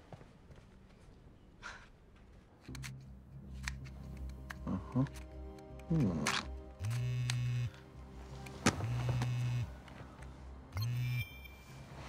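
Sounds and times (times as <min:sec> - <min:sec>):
phone vibrating buzz: 0:06.8 - 0:07.8, 0:08.8 - 0:09.7.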